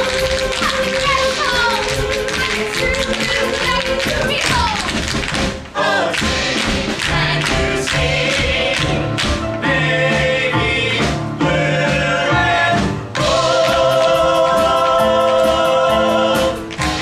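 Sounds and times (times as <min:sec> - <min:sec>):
tap dancing on stage floor: 0:00.0 - 0:09.6
show tune music: 0:00.0 - 0:17.0.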